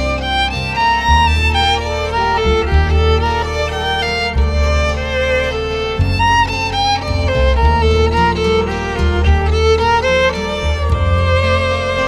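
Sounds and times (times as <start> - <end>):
deep bass notes: 0.0 - 12.0
sustained melody line: 0.0 - 12.0.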